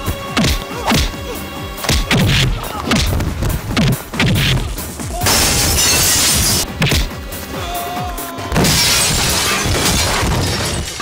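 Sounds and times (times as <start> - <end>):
glass shattering: 5.2 - 7.1, 8.6 - 11.0.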